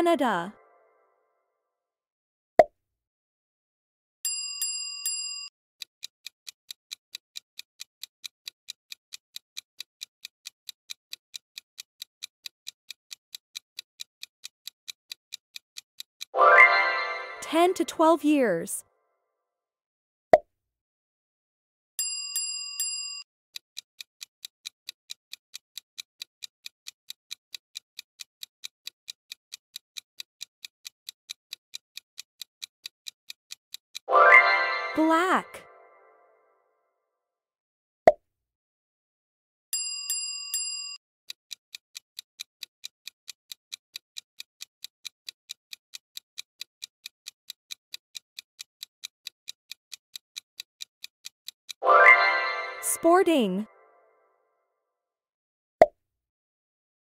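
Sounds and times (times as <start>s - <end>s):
countdown clock ticking: 0.0s - 0.6s, 16.2s - 18.7s, 34.0s - 36.2s, 48.4s - 53.7s
bright bell-like chime: 16.4s - 17.5s, 34.1s - 35.0s, 51.8s - 52.9s.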